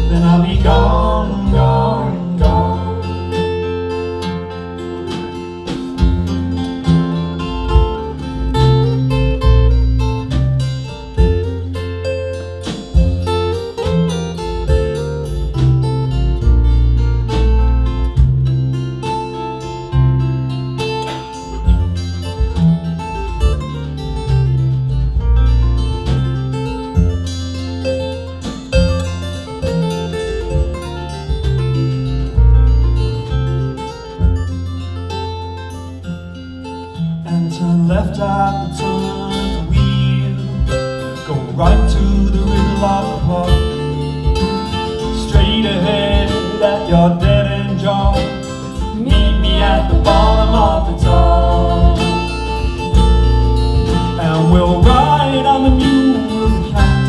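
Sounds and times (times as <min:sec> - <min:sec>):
drums keeping the beat: 0:00.0 - 0:35.8, 0:37.8 - 0:57.0
acoustic guitars strumming: 0:00.0 - 0:57.0
double bass walking: 0:00.0 - 0:57.0.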